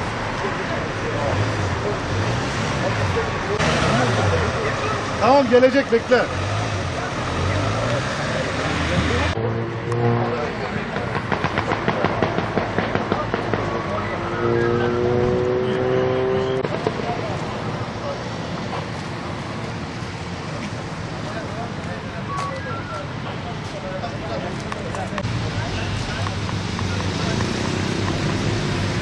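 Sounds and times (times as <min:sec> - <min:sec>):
indistinct voices of bystanders: 0:00.0 - 0:29.0
vehicle noise: 0:00.0 - 0:29.0
quick run of clicks: 0:26.1 - 0:28.9.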